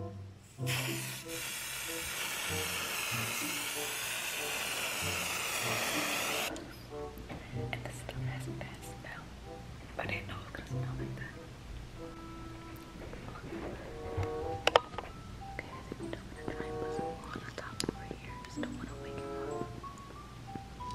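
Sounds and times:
aerosol spray hissing: 0.5 - 6.5.

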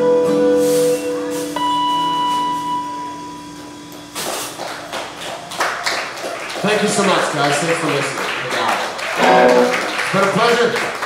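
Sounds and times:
guitar chord ringing: 0.0 - 4.1, 9.2 - 10.1
audience applause: 4.2 - 11.0.

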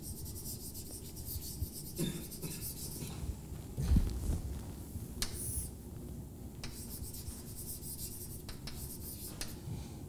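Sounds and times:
chalk scratching on blackboard: 0.0 - 3.2, 5.2 - 5.7, 6.6 - 9.6.

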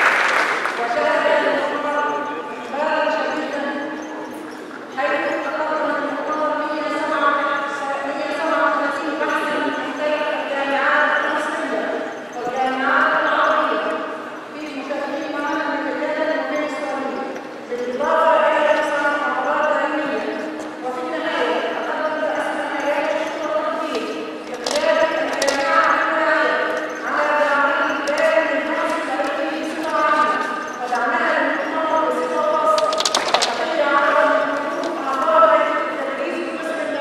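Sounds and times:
woman talking into microphone: 0.8 - 4.3, 5.0 - 37.0
woman speaking over loudspeakers: 0.8 - 37.0.

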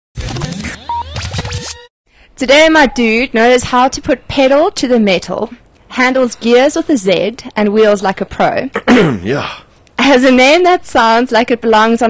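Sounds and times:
record scratch effects: 0.2 - 1.9.

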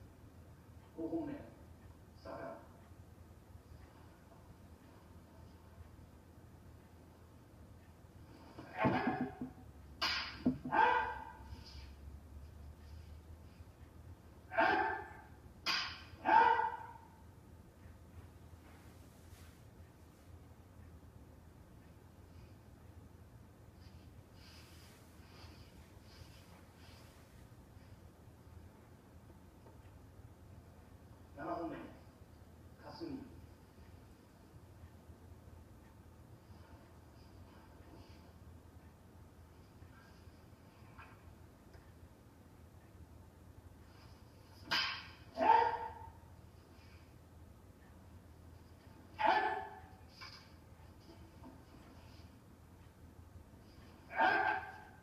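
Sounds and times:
sharp martial arts shouts: 10.7 - 11.2, 14.5 - 15.2, 16.2 - 16.8, 45.4 - 46.0, 49.2 - 49.8, 54.1 - 54.7
person shouting sharply: 14.5 - 15.1, 49.2 - 49.7.

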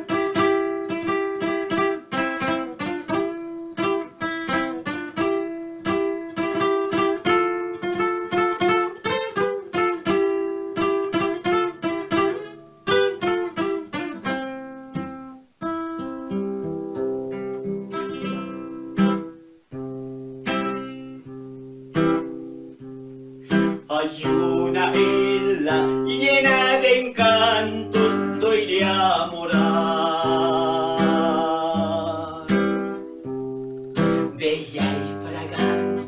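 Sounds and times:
acoustic guitar strumming: 0.0 - 36.0
person singing: 23.6 - 33.1, 34.0 - 36.0.

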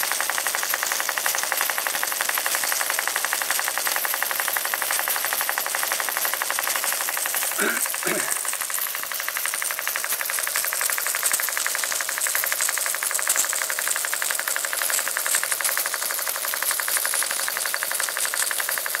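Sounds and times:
model steam engine exhaust beats: 0.0 - 19.0.

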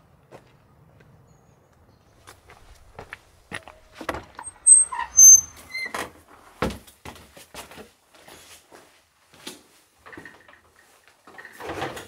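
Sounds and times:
wooden door squeaking: 4.3 - 6.1.

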